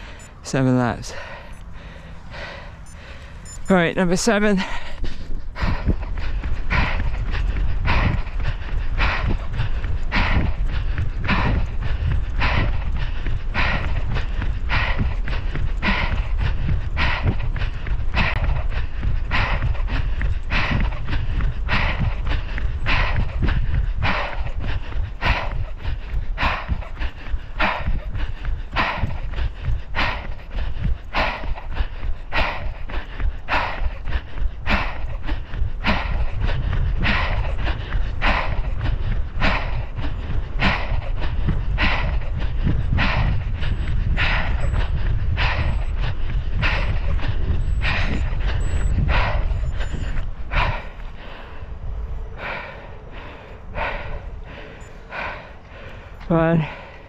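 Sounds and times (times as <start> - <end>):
hard breathing: 0.0 - 57.0
running footfalls: 0.0 - 57.0
wind rumble on microphone: 4.6 - 57.0.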